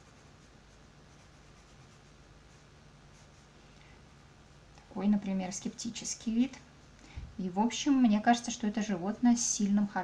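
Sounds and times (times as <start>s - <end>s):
pencil drawing on paper: 0.0s - 3.5s
low steady hum: 0.0s - 10.0s.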